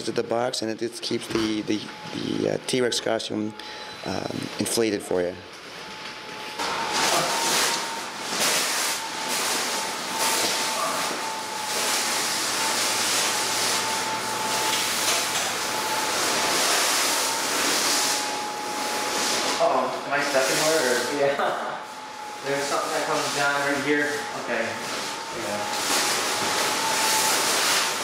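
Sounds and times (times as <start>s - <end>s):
blower fan whining: 0.0s - 28.0s.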